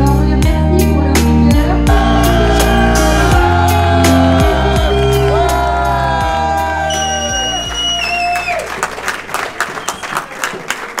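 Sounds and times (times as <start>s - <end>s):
music with long held notes: 0.0s - 7.8s
audience clapping in a hall: 1.9s - 11.0s.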